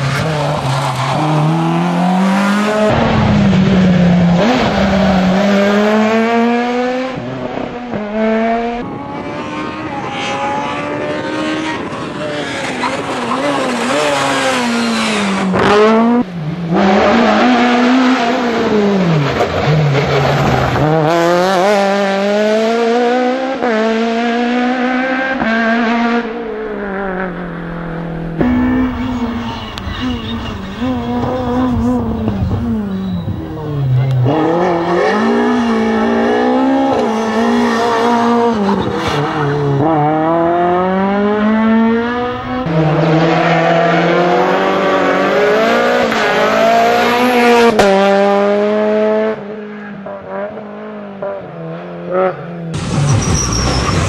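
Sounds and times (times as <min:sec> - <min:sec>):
rally car engines revving: 0:00.0 - 0:54.0.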